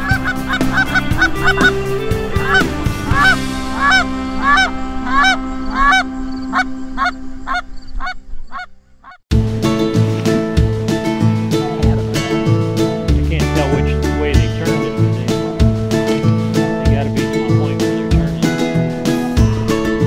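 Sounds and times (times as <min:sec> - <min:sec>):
country music with guitar: 0:00.0 - 0:06.6, 0:09.3 - 0:20.0
geese honking: 0:00.0 - 0:09.2.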